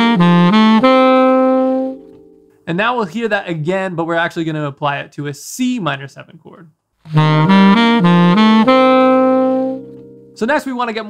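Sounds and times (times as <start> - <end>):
saxophone playing quick notes: 0.0 - 2.2, 7.1 - 10.4.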